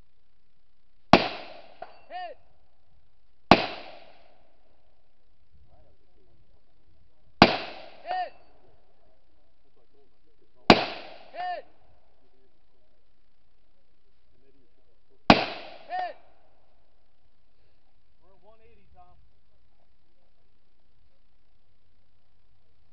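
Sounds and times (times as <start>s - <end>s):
rifle shots: 1.1s - 2.1s, 3.5s - 4.4s, 7.4s - 8.4s, 10.7s - 11.4s, 15.3s - 16.1s
distant steel target ring: 1.1s - 2.4s, 7.4s - 8.8s.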